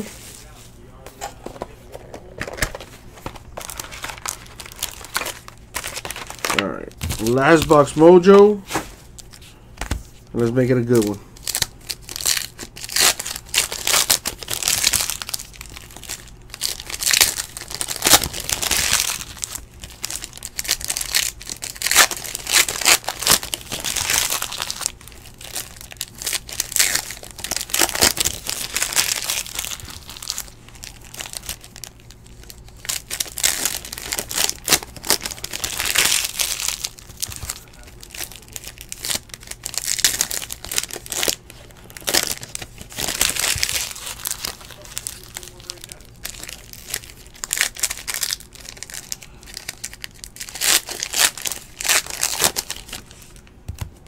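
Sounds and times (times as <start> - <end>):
foil wrappers tearing and crinkling: 2.4 - 9.4, 10.4 - 53.4.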